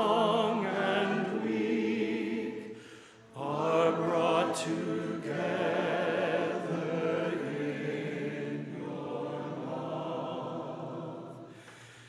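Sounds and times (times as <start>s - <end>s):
congregation singing a hymn: 0.0s - 11.7s.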